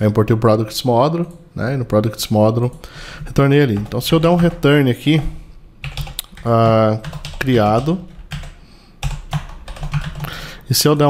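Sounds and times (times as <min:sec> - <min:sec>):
computer keyboard typing: 0:02.7 - 0:10.4.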